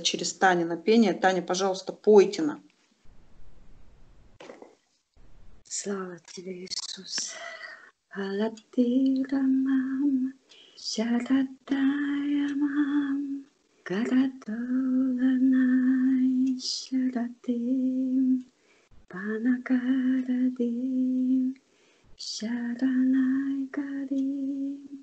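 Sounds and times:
quick breaths: 18.6s - 19.0s, 21.6s - 22.2s.

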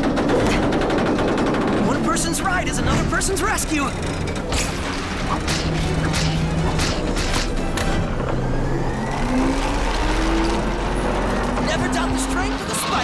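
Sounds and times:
mechanical clanks: 0.0s - 13.0s
rising tone: 4.8s - 12.8s.

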